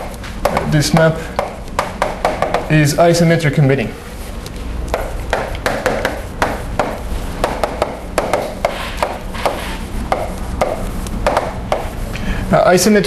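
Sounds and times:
chalk writing on blackboard: 0:04.9 - 0:12.1.

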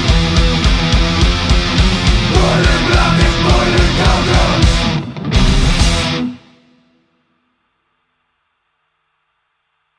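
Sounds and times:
heavy metal band playing: 0:00.0 - 0:06.6.

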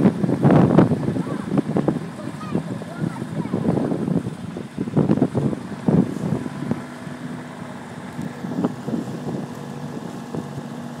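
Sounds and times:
motorboat engine running: 0:00.0 - 0:11.0
water rushing along hull: 0:00.0 - 0:11.0
wind buffeting microphone: 0:00.0 - 0:11.0.

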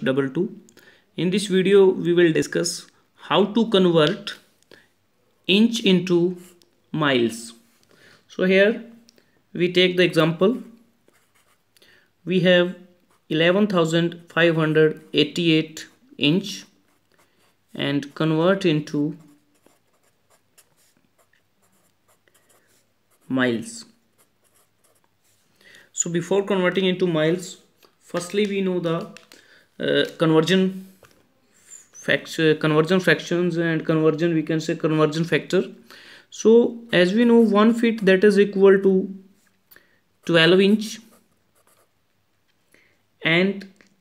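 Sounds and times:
marker writing on paper: 0:11.0 - 0:11.6, 0:19.1 - 0:23.3, 0:24.2 - 0:25.2, 0:40.2 - 0:41.9.

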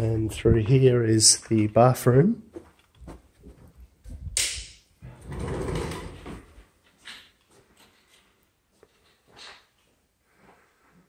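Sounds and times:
sliding door scraping on track: 0:05.1 - 0:06.5.

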